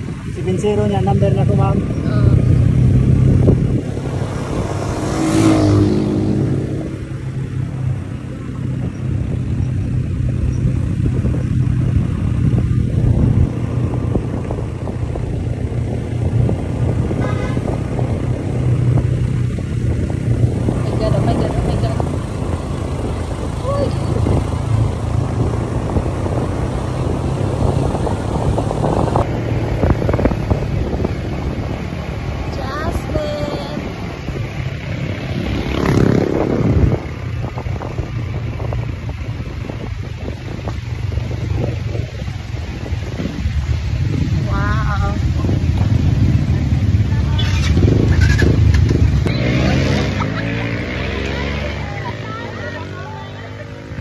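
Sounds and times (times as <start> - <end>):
motorcycle engine running: 0.0 - 54.0
wind and road noise: 0.0 - 54.0.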